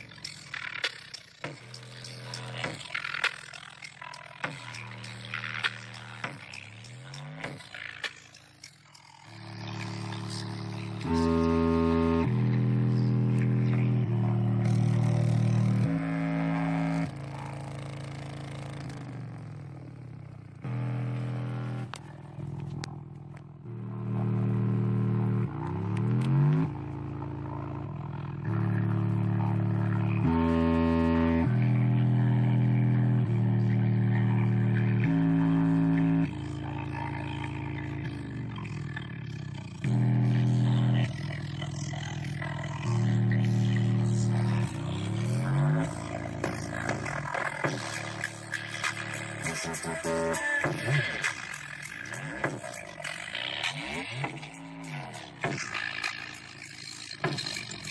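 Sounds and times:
bass test tones: 0:01.4 - 0:57.9.

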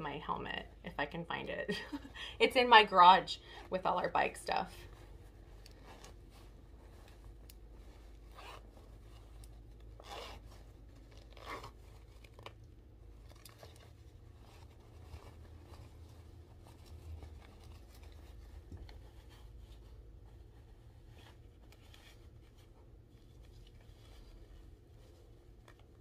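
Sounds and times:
fabric rustling and scraping: 0:00.0 - 0:26.0
low room hum: 0:00.0 - 0:26.0.

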